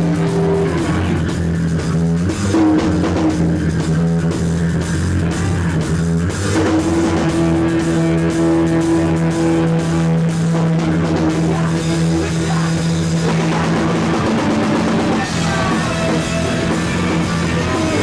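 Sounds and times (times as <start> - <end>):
punk band playing live: 0.0 - 18.0.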